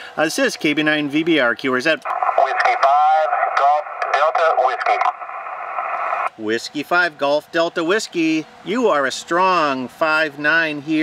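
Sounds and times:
radio static hiss: 2.0 - 6.3
voice over radio speaker: 2.0 - 6.3.

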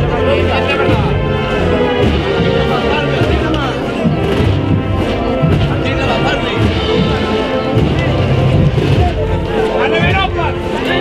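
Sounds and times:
people talking: 0.0 - 11.0
wind band playing march: 0.0 - 11.0.

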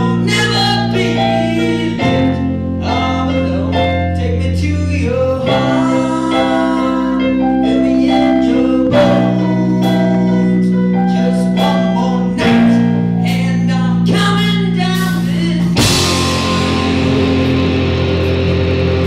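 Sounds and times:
person singing: 0.0 - 17.7
keyboard and bass notes: 0.0 - 19.0
loud electric guitars: 14.7 - 19.0
cymbal crash: 15.8 - 19.0.

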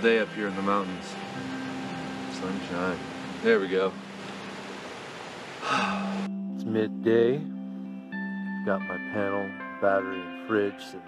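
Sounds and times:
outdoor background hiss: 0.0 - 6.4
man sighing: 5.6 - 6.3.

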